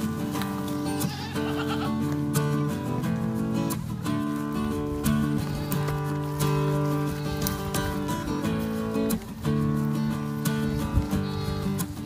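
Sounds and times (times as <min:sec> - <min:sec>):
background guitar music: 0:00.0 - 0:12.0
goat bleating: 0:00.4 - 0:02.5, 0:05.0 - 0:09.0, 0:10.3 - 0:12.0.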